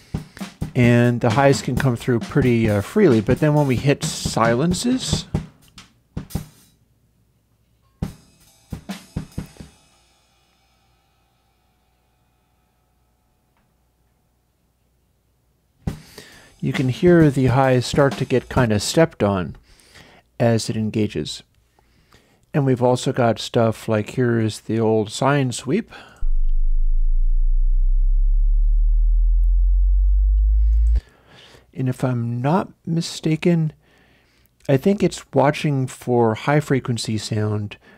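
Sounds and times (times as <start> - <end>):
deep pure test tone: 26.2 - 31.0
drum kit hits: 26.2 - 31.0.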